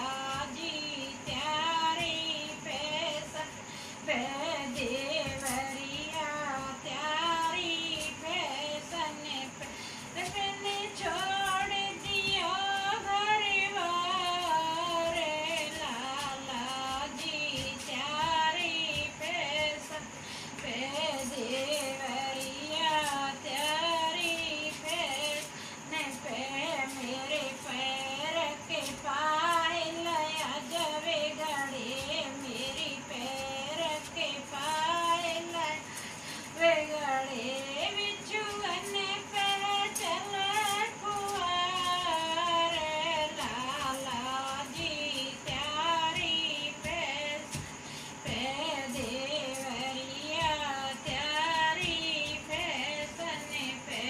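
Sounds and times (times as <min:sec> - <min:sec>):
woman singing folk song: 0:00.0 - 0:54.0.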